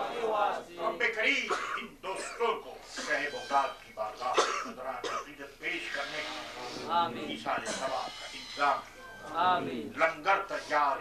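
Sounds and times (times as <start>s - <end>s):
man speaking into a microphone: 0.6s - 11.0s
man coughing: 1.5s - 3.2s, 4.3s - 5.3s, 7.6s - 8.0s.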